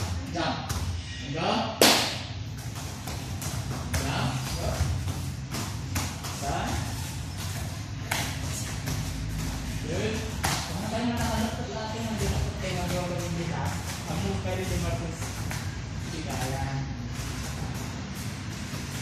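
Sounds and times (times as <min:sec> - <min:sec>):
hands and feet thudding on foam mats: 0:01.8 - 0:19.0.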